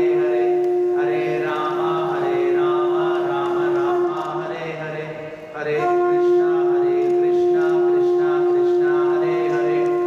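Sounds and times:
conch shell blown: 0.0s - 4.3s, 5.2s - 10.0s.

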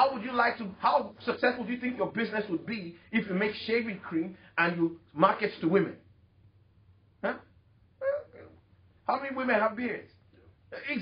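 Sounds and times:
man saying huh: 7.2s - 8.6s
brief vocal sound: 8.0s - 8.6s.

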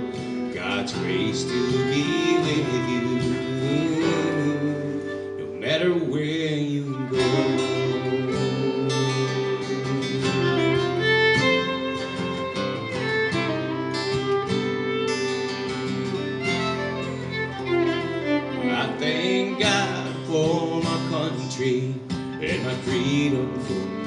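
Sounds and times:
acoustic guitar strummed: 0.0s - 24.0s
fiddle playing melody: 0.0s - 24.0s.

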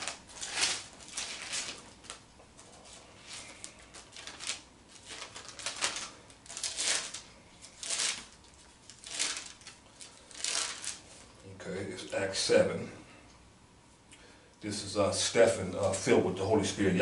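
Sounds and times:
paper pages rustling: 0.0s - 11.4s.

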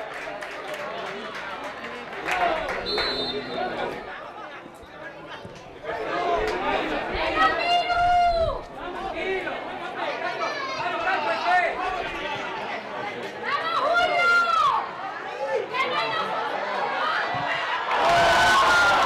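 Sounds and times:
voices shouting and calling out: 5.4s - 19.0s
loud drawn-out shout: 17.9s - 19.0s.

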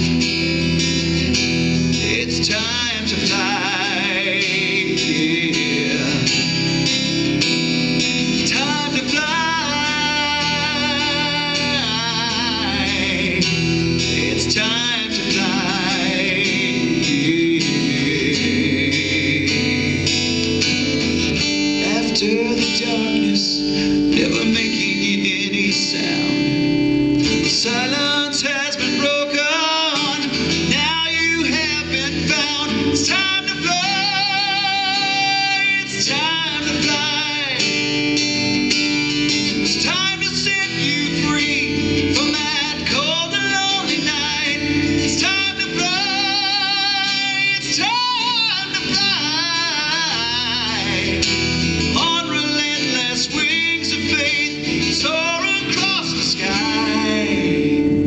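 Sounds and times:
strummed acoustic guitar: 0.0s - 58.0s
man singing with vibrato: 1.0s - 58.0s.

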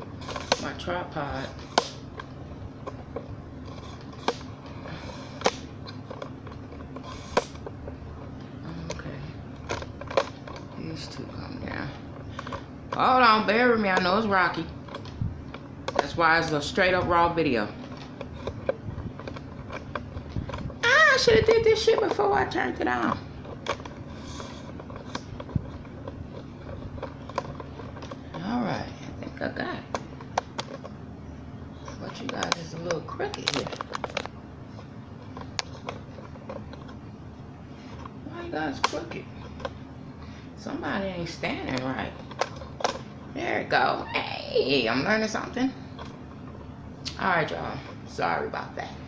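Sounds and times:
low steady hum: 0.0s - 49.0s.

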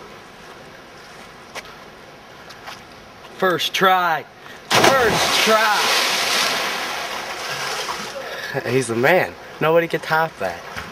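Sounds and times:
outdoor river background noise: 0.0s - 10.9s.

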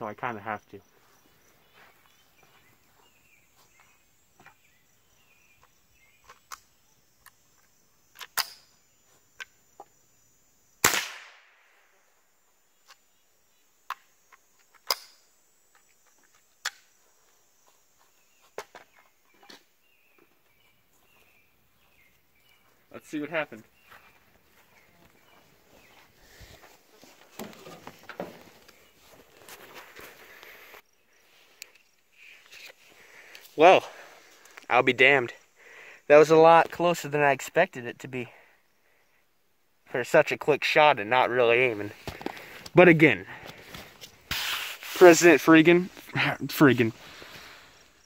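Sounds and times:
crickets chirping: 0.0s - 48.0s
rifle shot with echo: 10.8s - 11.6s.

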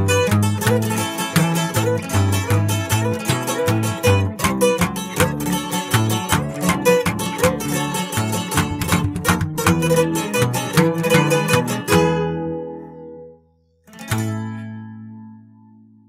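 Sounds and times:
plucked guitars playing: 0.0s - 16.0s.

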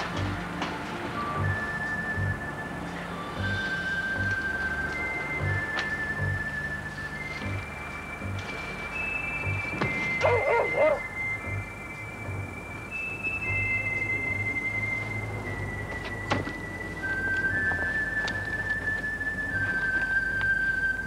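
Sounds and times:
suspense music: 0.0s - 21.0s
short wavering cry: 10.2s - 11.1s.

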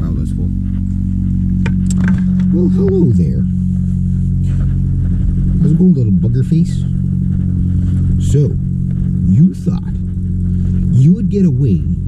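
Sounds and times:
motor humming: 0.0s - 12.0s.

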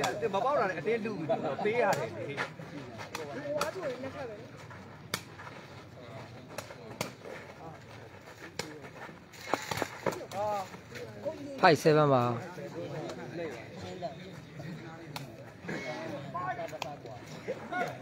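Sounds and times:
people talking: 0.0s - 4.6s.

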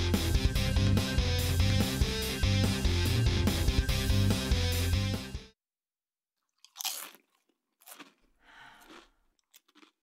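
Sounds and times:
person chewing crunchily: 6.4s - 10.0s.

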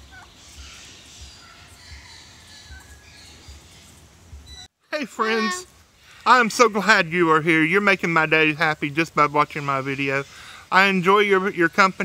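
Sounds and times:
chickens clucking: 0.0s - 3.5s
turkey calling: 0.0s - 3.7s
steady outdoor hiss: 0.0s - 12.0s.

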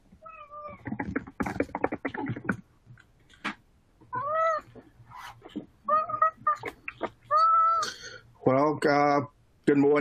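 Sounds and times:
cat meowing: 0.2s - 0.9s, 4.1s - 4.8s, 5.8s - 7.9s.

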